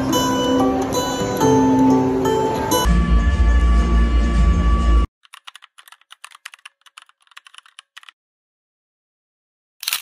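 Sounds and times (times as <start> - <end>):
keyboard keystroke clicks: 5.2 - 8.1.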